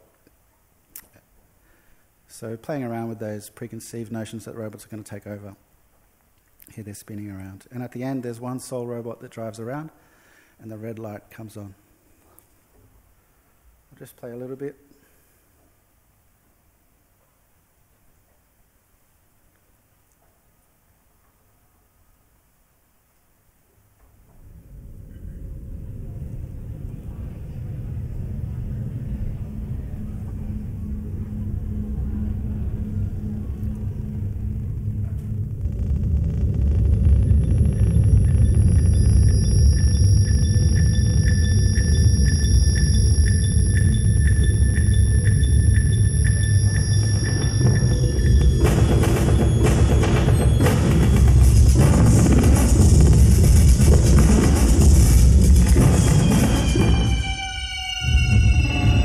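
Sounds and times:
low rumbling electronic drone: 0:24.3 - 0:59.0
dense noisy wash: 0:24.4 - 0:57.2
high steady electronic tones: 0:29.4 - 0:59.0
sharp percussive hits: 0:36.3 - 0:57.3.

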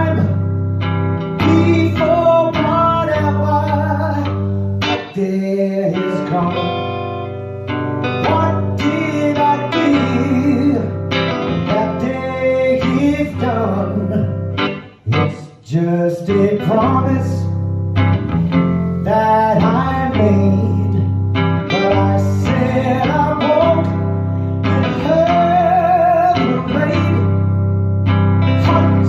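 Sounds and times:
man singing: 0:00.0 - 0:17.8, 0:18.5 - 0:29.0
electric guitar chords: 0:00.0 - 0:29.0.

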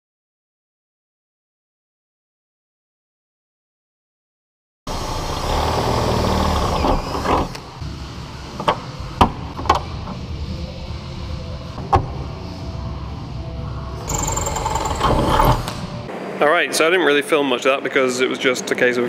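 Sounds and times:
cordless drill boring: 0:04.9 - 0:07.6, 0:14.0 - 0:15.7.

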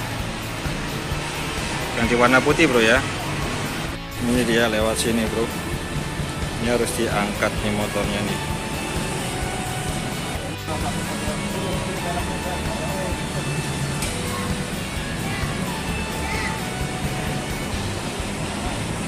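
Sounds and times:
background music: 0:00.0 - 0:19.0
traffic noise: 0:00.0 - 0:19.0.

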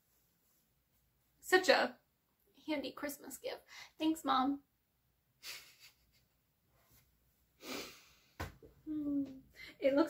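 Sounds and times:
woman speaking: 0:02.6 - 0:04.6, 0:08.9 - 0:10.0.

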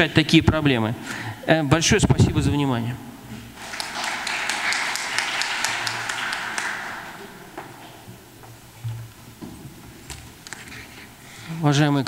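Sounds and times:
audience applauding: 0:03.6 - 0:08.1.

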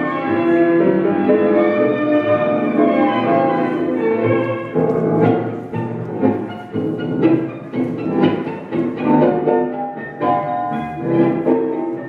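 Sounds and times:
tango music with strings and piano: 0:00.0 - 0:12.0.

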